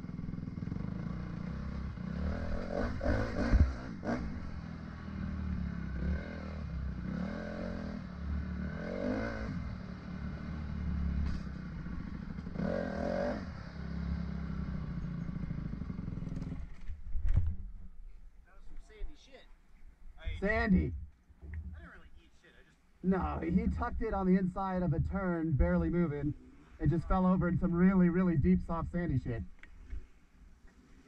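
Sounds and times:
dirt bike engine running: 0.0 - 17.8.

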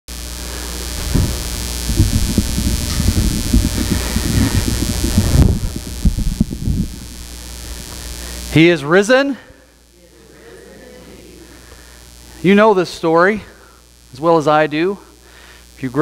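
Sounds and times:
steady hiss: 0.1 - 16.0
rustling and thumps of person walking: 0.5 - 8.0.

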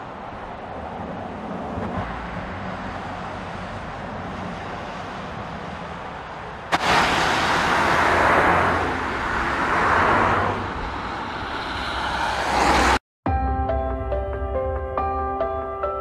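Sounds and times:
car tyre noise on wet road: 0.0 - 13.0.

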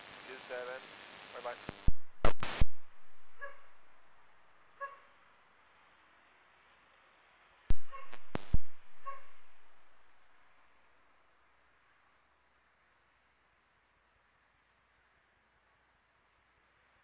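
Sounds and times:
radio hiss: 0.0 - 5.0, 5.6 - 10.1
microphone keying clicks: 7.7 - 9.4
faint short blips: 7.7 - 9.8.

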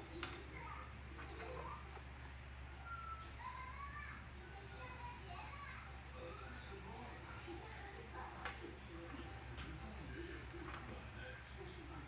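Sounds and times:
children chattering: 2.8 - 9.1.

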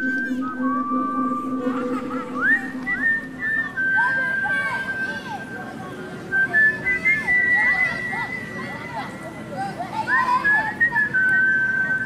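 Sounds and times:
person whistling a slow tune: 0.0 - 8.8, 10.1 - 12.0.

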